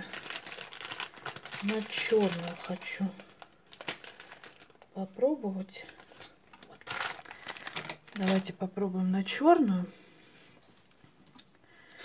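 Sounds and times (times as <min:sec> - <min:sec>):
plastic tips rustling and clicking: 0:05.9 - 0:08.5.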